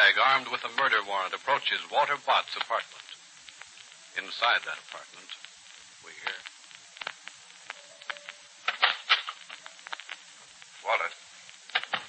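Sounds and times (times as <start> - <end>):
old radio broadcast hiss: 0.0 - 12.0
sharp clicks: 4.6 - 10.2, 11.5 - 12.0.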